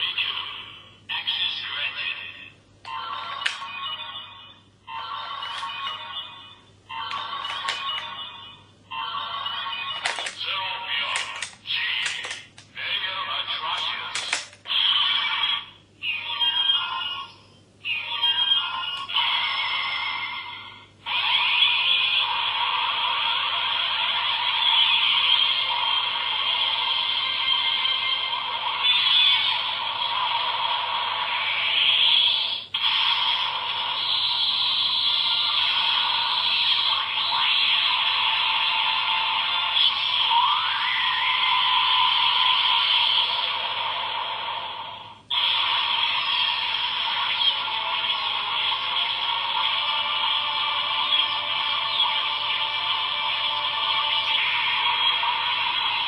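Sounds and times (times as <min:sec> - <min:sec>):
tinny toy music and sound effects: 0:00.0 - 0:56.0.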